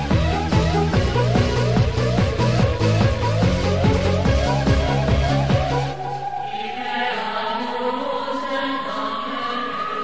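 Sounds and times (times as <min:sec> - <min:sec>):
techno kick drum: 0:00.0 - 0:05.9
held tone rising in pitch: 0:00.9 - 0:10.0.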